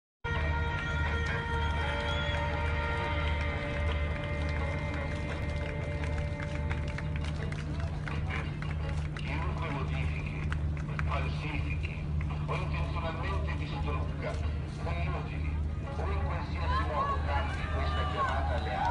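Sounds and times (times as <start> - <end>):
ship engine throbbing: 0.3 - 17.8
people talking: 0.4 - 18.9.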